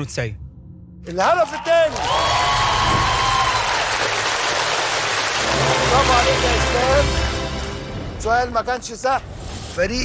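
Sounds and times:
audience applauding and cheering: 1.1 - 8.0.

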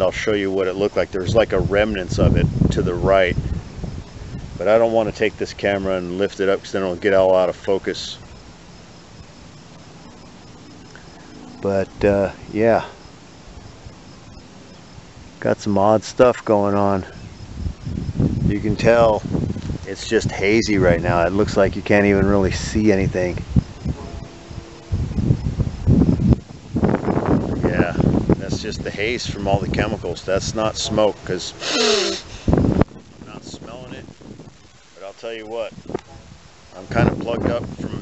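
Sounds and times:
insect chirping: 0.0 - 38.0
low steady hiss: 0.0 - 38.0
wind buffeting microphone: 0.0 - 38.0.

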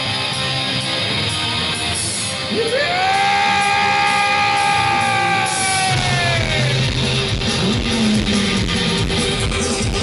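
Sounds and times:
live punk rock band: 0.0 - 10.0.

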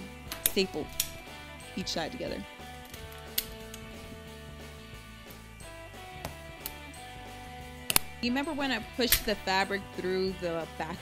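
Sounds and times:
background music: 0.0 - 11.0
staple gun firing into fabric: 7.9 - 8.1.

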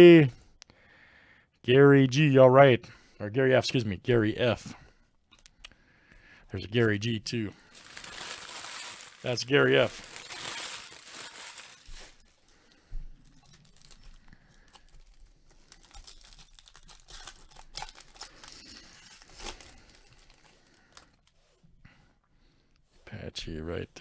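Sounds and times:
foil wrapper crinkling: 7.6 - 21.4
cards rustling: 7.7 - 21.5.

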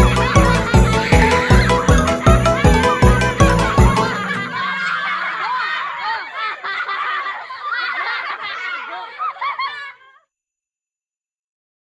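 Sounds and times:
laughter: 0.0 - 10.3.

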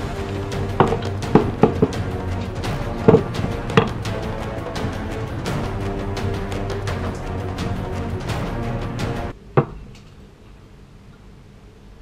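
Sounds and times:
background music: 0.0 - 9.4.

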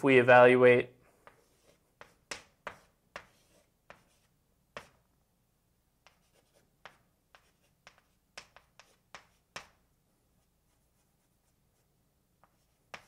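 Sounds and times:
chalk tapping on blackboard: 1.2 - 5.1, 6.0 - 9.8, 12.4 - 13.0.

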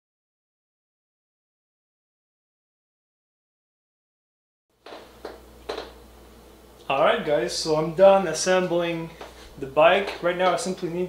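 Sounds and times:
low room hum: 4.8 - 11.0.

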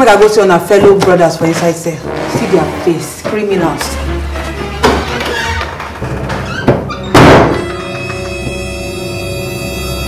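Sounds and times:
background music: 0.0 - 10.0
loud sudden thud: 7.2 - 7.6.

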